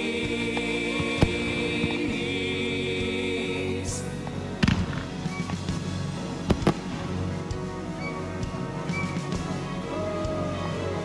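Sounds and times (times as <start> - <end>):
instrumental song backing: 0.0 - 11.0
firework bangs: 4.6 - 7.0.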